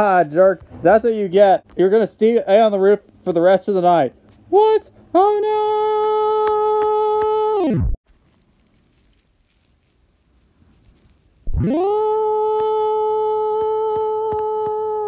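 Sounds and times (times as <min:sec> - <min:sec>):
buzzy held tone bending in pitch: 0:11.4 - 0:14.2.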